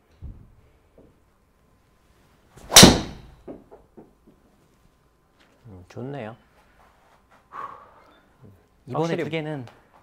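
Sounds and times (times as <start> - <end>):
golf driver striking ball: 2.7 - 3.4.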